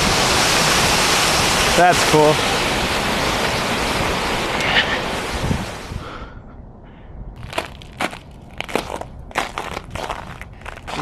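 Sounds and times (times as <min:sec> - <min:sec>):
fountain water splashing: 0:00.0 - 0:05.9
footsteps crunching on snow: 0:07.4 - 0:11.0.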